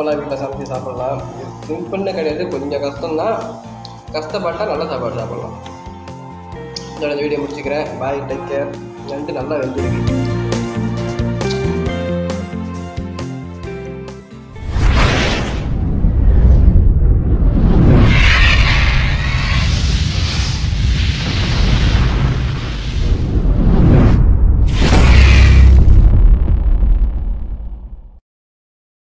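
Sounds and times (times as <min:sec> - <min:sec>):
fiery whooshes and booms: 0:14.5 - 0:28.2
deep rumble: 0:14.6 - 0:28.2.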